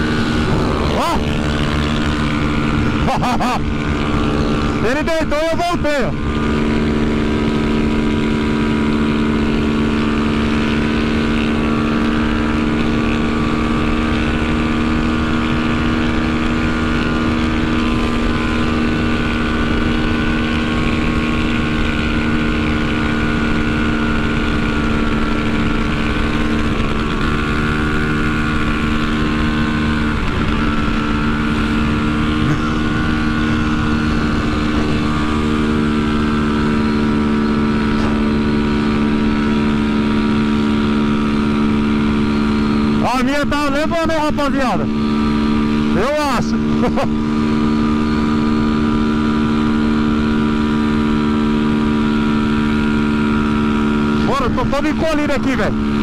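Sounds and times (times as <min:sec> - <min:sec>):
wind rush over microphone: 0:00.0 - 0:03.1
motorcycle engine at high revs: 0:00.0 - 0:56.0.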